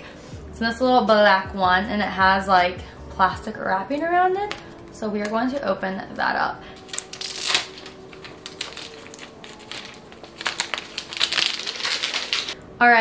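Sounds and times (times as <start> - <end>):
plastic wrapping tearing and crinkling: 6.8 - 12.6.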